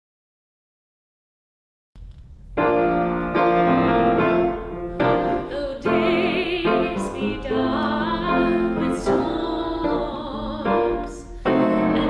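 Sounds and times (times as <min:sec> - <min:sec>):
grand piano chords: 0:02.0 - 0:12.0.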